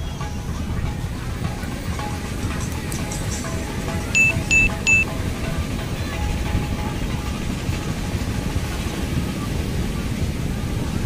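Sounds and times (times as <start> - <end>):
background music: 0.0 - 11.0
bright notification chimes: 4.2 - 5.1.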